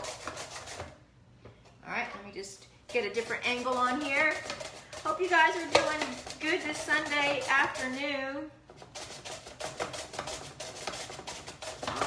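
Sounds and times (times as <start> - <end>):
sweet potato shredding on blades: 2.9 - 8.2.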